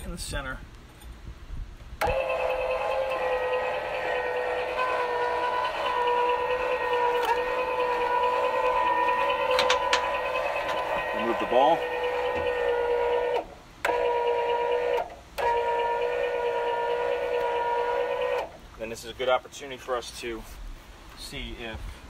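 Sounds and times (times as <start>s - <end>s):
electric jack motor whining: 2.0s - 18.6s.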